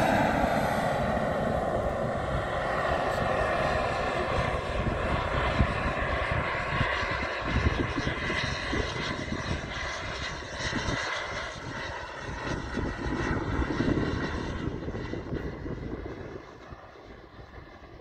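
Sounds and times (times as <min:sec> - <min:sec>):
model jet engine whine: 0:00.0 - 0:18.0
wind rumble on microphone: 0:00.0 - 0:18.0.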